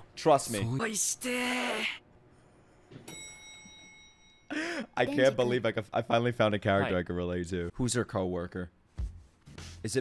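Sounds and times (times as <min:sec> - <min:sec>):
faint elevator chime: 0:02.3 - 0:05.6.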